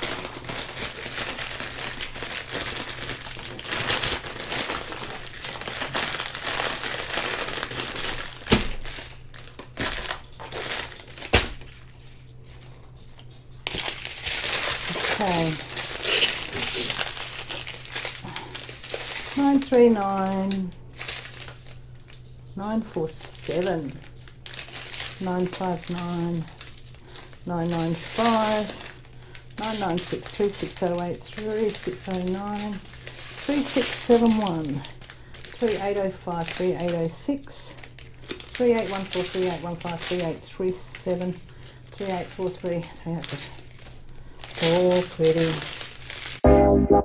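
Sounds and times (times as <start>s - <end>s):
plastic bags crinkling: 0.0s - 46.4s
person talking: 14.9s - 15.7s, 19.4s - 20.7s, 22.6s - 24.0s, 25.2s - 26.6s, 27.4s - 28.8s, 29.6s - 32.8s, 33.5s - 34.9s, 35.6s - 37.8s, 38.6s - 41.4s, 42.0s - 43.5s, 44.6s - 45.6s
electronic music: 46.4s - 47.0s.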